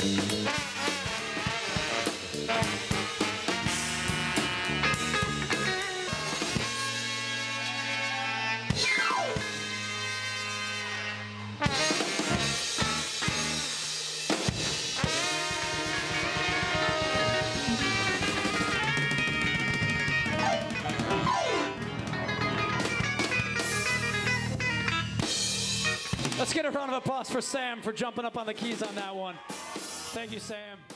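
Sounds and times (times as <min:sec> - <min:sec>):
electric bass and guitar: 0:00.0 - 0:13.8, 0:15.0 - 0:26.4
horn section: 0:00.0 - 0:26.9
keyboard: 0:00.0 - 0:26.9
drum kit: 0:00.0 - 0:27.4, 0:28.2 - 0:30.9.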